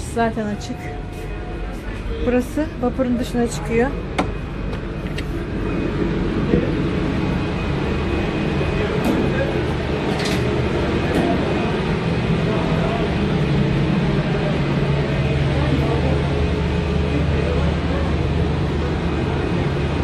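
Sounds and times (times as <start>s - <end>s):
ferry engines droning: 0.0s - 20.0s.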